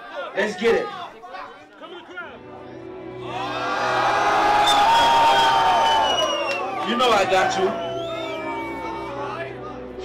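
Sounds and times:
concert crowd cheering: 3.2 - 9.6.

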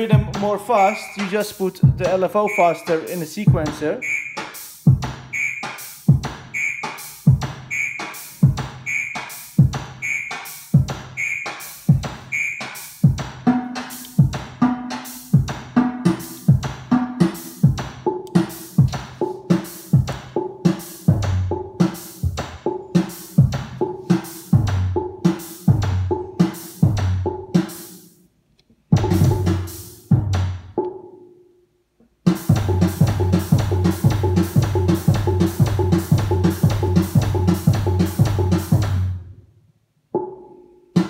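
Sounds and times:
looping electronic drum pattern: 0.0 - 28.0, 29.0 - 31.0, 32.3 - 39.1
short high synth blip: 2.5 - 2.9, 4.0 - 4.6, 5.3 - 5.8, 6.6 - 7.0, 7.7 - 8.3, 8.9 - 9.3.

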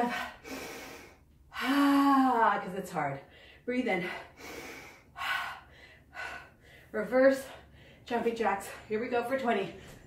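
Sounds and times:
woman breathing hard: 0.0 - 2.3, 3.2 - 8.1.

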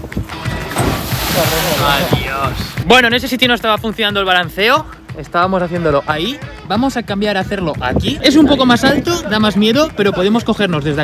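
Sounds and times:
splash into the sea: 0.7 - 2.2.

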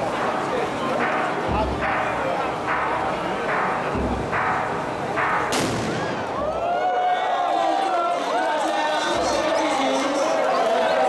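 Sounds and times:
crowd din: 0.0 - 11.0
firework cannon bang: 3.5 - 6.6.

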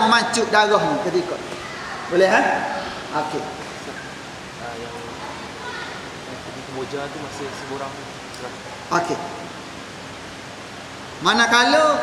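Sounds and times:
electric fan running: 0.0 - 12.0
room noise hiss: 0.0 - 12.0.

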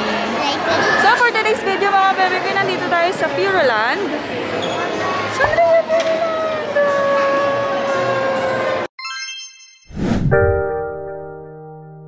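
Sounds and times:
busy indoor hall noise: 0.0 - 8.9.

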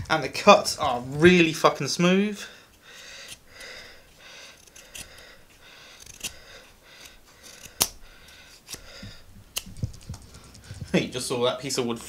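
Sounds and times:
knife scraping wood: 2.7 - 10.9.

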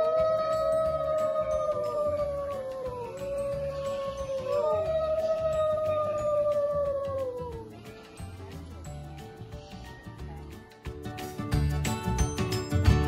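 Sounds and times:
long howling tones: 0.0 - 7.6
background music with drum beat: 0.0 - 13.0.

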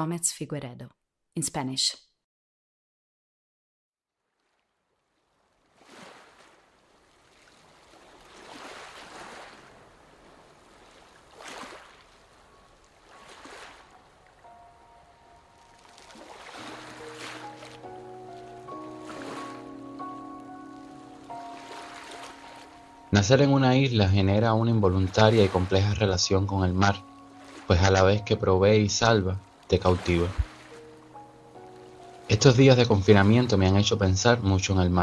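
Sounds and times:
ocean waves washing in: 5.2 - 23.1, 25.0 - 26.0
soft sustained music notes: 12.4 - 35.0.

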